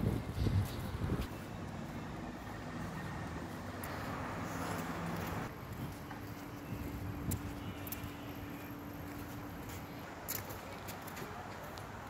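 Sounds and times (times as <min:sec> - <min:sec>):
traffic rumble: 0:00.0 - 0:12.0.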